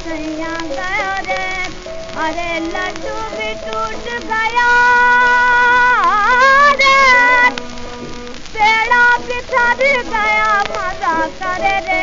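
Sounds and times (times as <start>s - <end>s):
woman singing film song: 0.0s - 7.8s, 8.4s - 12.0s
record surface noise: 0.0s - 12.0s
soft accompaniment: 0.0s - 12.0s.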